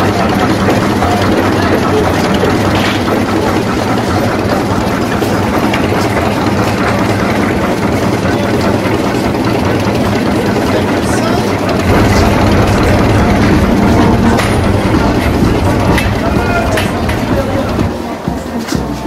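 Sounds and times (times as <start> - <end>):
tractor engine idling: 0.0 - 18.5.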